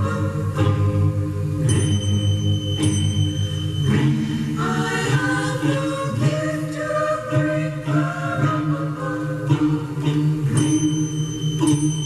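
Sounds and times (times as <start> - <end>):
choir singing on small radio: 0.0 - 12.0.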